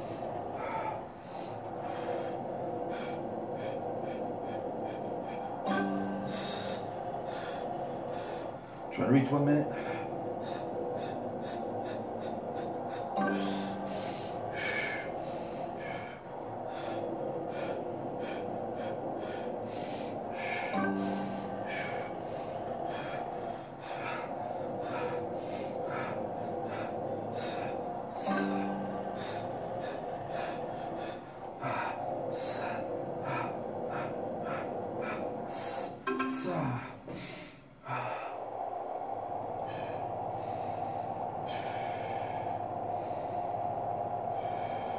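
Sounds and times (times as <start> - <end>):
man breathing hard: 0.0 - 36.1, 36.8 - 44.9
background music: 5.6 - 7.6, 13.1 - 15.7, 19.9 - 23.0, 28.2 - 30.5, 36.0 - 36.8.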